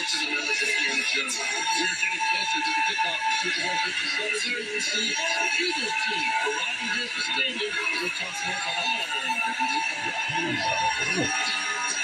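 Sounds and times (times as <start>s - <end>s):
background music: 0.0s - 12.0s
voices talking on tv: 0.0s - 12.0s.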